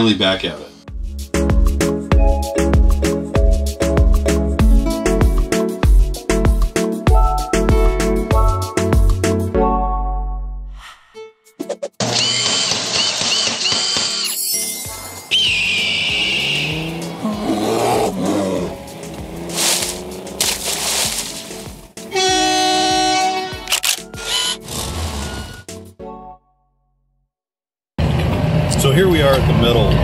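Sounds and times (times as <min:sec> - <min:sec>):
intro music: 0:00.8 - 0:10.7, 0:14.8 - 0:24.2
high chirps: 0:14.2 - 0:17.9.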